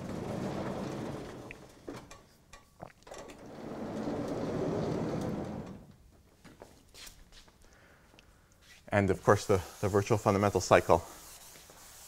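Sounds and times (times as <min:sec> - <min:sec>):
sliding chalkboard panel rumble: 0:00.0 - 0:02.0, 0:03.4 - 0:05.9.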